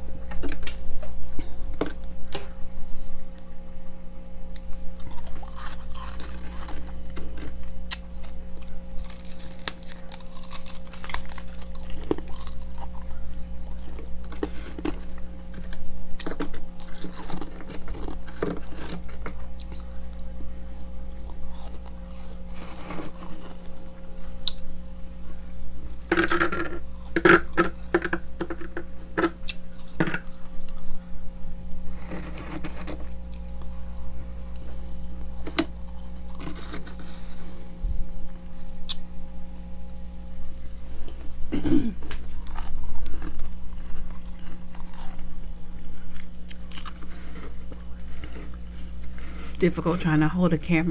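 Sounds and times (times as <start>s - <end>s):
low hum: 0.0s - 50.9s
frost being chewed: 4.5s - 24.7s, 31.9s - 37.5s, 38.8s - 40.0s, 42.0s - 49.5s.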